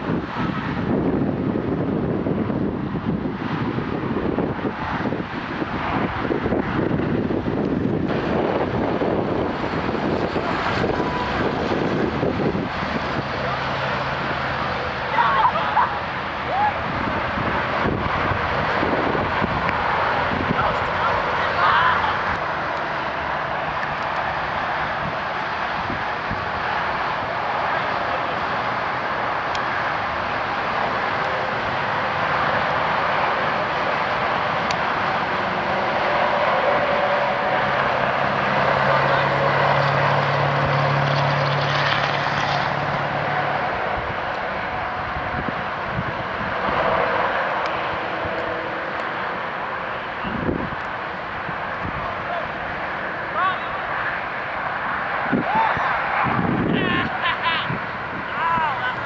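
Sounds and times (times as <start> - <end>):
outdoor traffic noise: 0.0 - 59.0
passing engine drone: 0.0 - 59.0.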